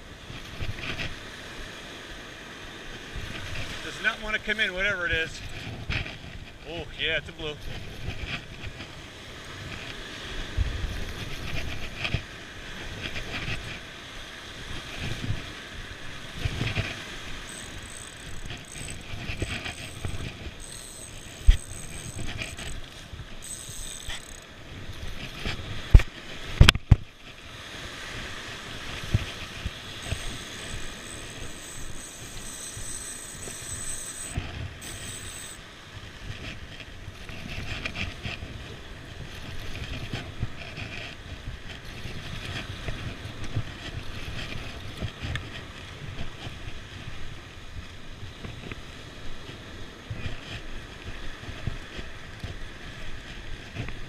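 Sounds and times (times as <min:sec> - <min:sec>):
wind noise on microphone: 0:00.0 - 0:01.7, 0:02.9 - 0:54.0
fishing reel whirring: 0:16.4 - 0:25.5, 0:29.2 - 0:35.6.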